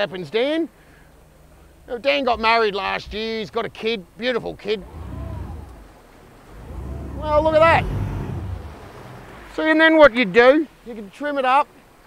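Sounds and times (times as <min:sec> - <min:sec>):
wind buffeting the microphone: 0:04.8 - 0:09.7.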